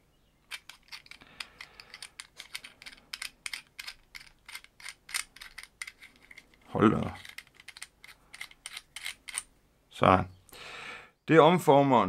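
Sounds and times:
plastic parts clicking and rattling: 0:00.4 - 0:09.5.

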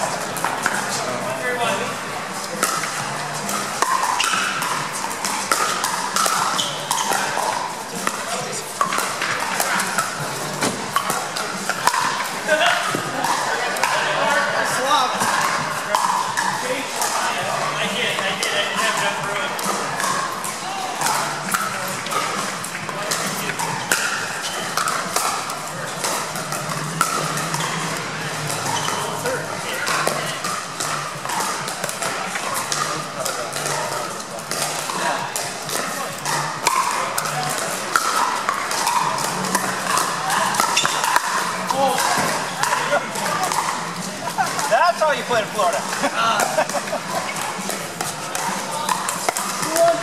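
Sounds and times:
babble of crowd voices: 0:00.0 - 0:50.0
paddles hitting plastic balls: 0:00.0 - 0:50.0.

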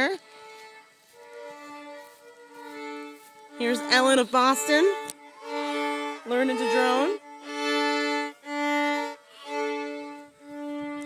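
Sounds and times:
fiddle playing a drone: 0:00.0 - 0:11.0.

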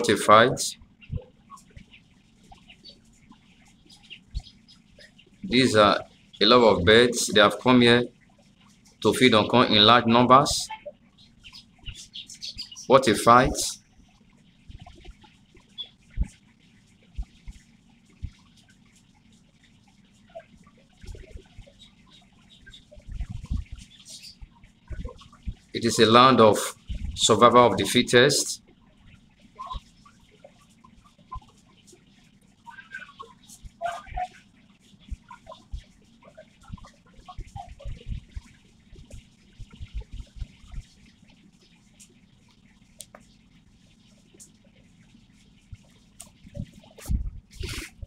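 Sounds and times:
small birds chirping: 0:00.0 - 0:47.0.

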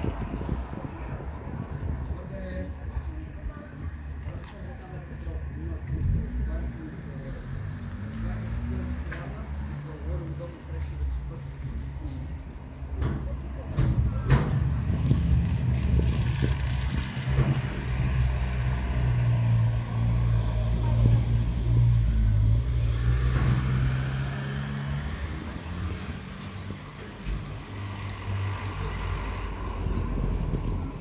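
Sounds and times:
street noise: 0:00.0 - 0:31.0.

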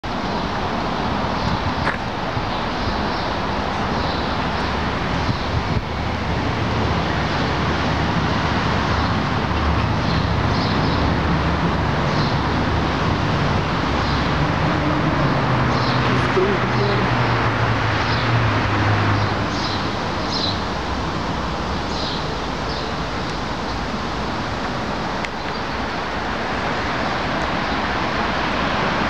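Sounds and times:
passing vehicles rushing: 0:00.0 - 0:29.0.

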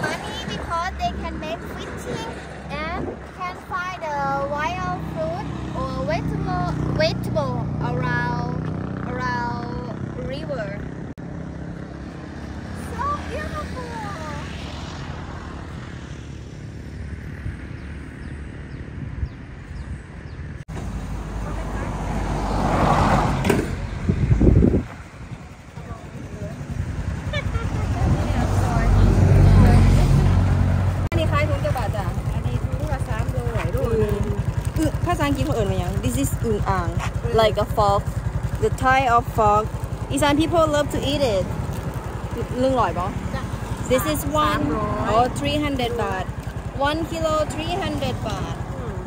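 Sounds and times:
road traffic passing: 0:00.0 - 0:49.0
motorcycle engine idling: 0:23.6 - 0:29.0, 0:31.1 - 0:49.0.

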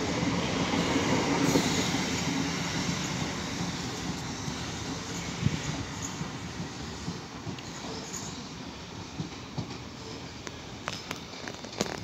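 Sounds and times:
electric train running on rails: 0:00.0 - 0:12.0.

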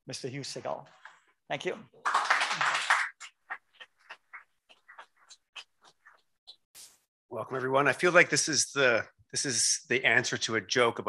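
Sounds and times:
audience applause: 0:02.0 - 0:03.3.

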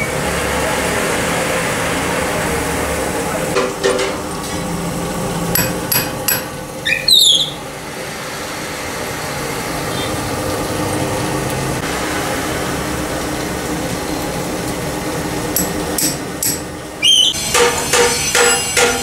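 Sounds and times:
metal lathe running: 0:04.7 - 0:06.8, 0:15.1 - 0:19.0
sharp metallic taps: 0:05.5 - 0:06.6, 0:15.6 - 0:16.7, 0:17.5 - 0:19.0
short screech: 0:17.0 - 0:17.6.

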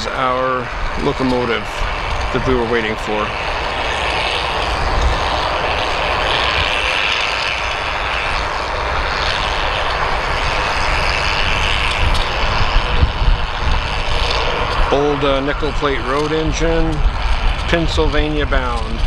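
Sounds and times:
low rumble: 0:00.0 - 0:19.0
steady rushing noise: 0:00.0 - 0:19.0
wind buffeting microphone: 0:00.0 - 0:19.0.

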